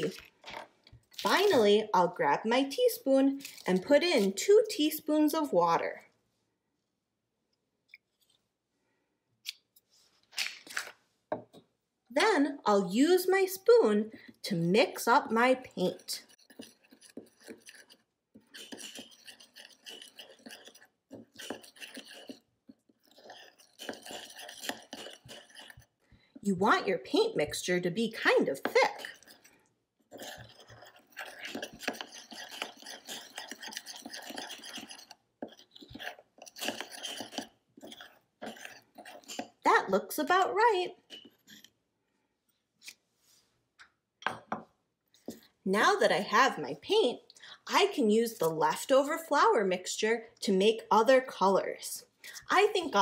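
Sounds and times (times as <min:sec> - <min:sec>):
spoon stirring thick paste: 0:00.0 - 0:05.5, 0:11.4 - 0:43.0, 0:43.9 - 0:47.1.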